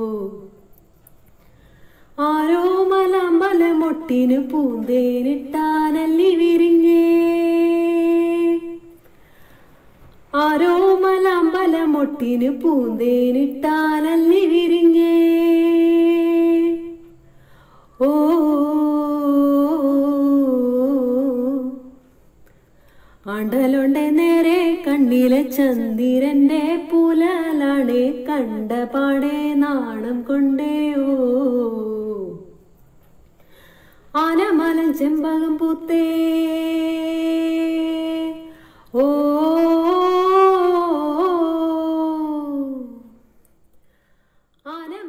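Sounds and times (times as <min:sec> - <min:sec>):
woman singing unaccompanied: 0:00.0 - 0:00.8, 0:02.1 - 0:09.0, 0:10.3 - 0:17.3, 0:17.9 - 0:22.1, 0:23.2 - 0:32.8, 0:34.1 - 0:43.2, 0:44.5 - 0:45.0.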